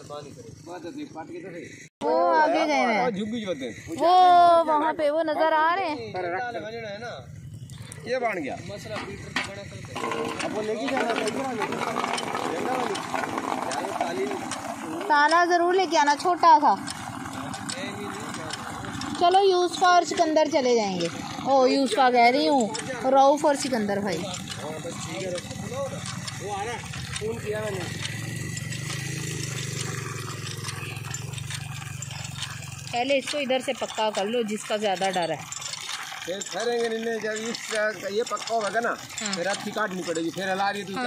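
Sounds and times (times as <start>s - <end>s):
indistinct voices: 7.7s - 41.0s
hand pump handle clacking: 8.7s - 41.0s
water splashing into a bucket: 29.2s - 40.4s.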